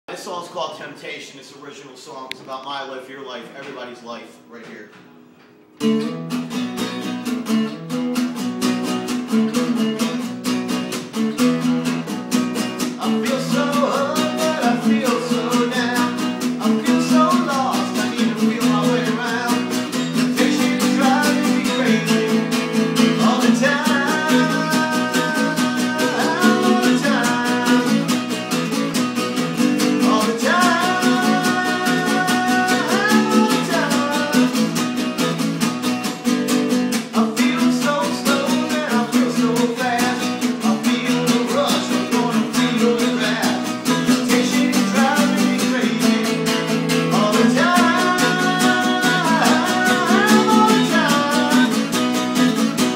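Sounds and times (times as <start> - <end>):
acoustic guitar strumming chords: 2.2 - 52.9
man singing: 12.9 - 28.8, 29.5 - 35.2, 36.9 - 52.6.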